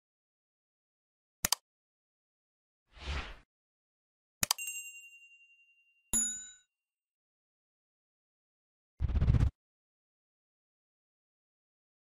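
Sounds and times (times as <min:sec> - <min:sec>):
bright bell-like ding: 0:04.6 - 0:06.7
high ringing ding: 0:04.6 - 0:06.7.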